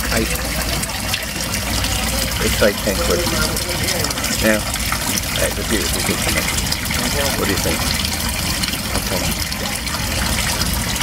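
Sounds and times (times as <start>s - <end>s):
water rushing in tank: 0.0s - 11.0s.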